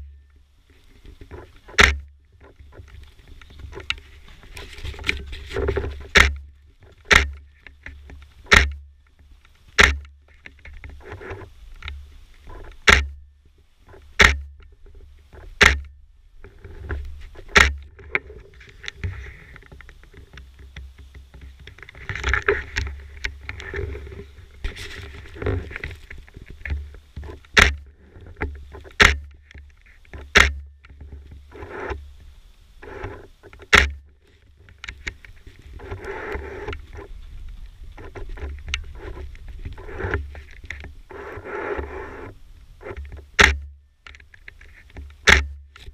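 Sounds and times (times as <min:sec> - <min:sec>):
camera jostling rumble: 0:00.7 - 0:45.9
loud thumps: 0:05.8 - 0:06.4, 0:08.4 - 0:08.8, 0:09.8 - 0:10.1, 0:12.8 - 0:13.2, 0:17.4 - 0:18.0, 0:30.2 - 0:30.7.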